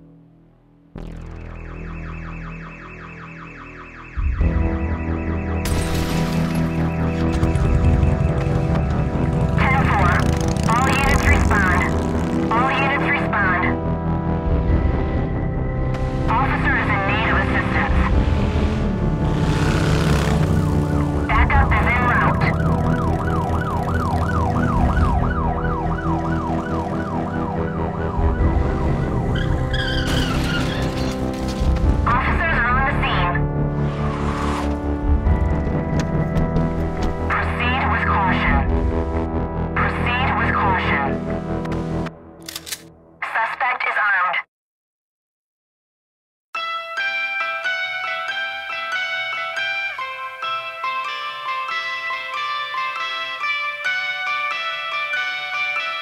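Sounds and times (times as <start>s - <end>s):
steady synth drone: 0.0s - 5.8s, 6.4s - 29.7s, 31.2s - 42.4s
siren wailing up and down: 1.0s - 5.6s, 6.8s - 13.8s, 19.2s - 31.2s
synthesizer falling sweeps: 1.0s - 5.6s, 33.6s - 35.0s.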